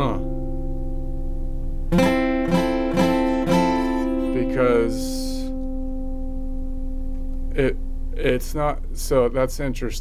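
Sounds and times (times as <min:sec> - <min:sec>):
acoustic guitar chord ringing: 0:00.0 - 0:09.4.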